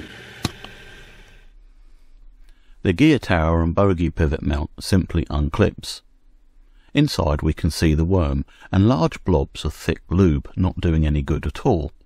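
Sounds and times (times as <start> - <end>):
low background hiss: 0.6 - 12.0.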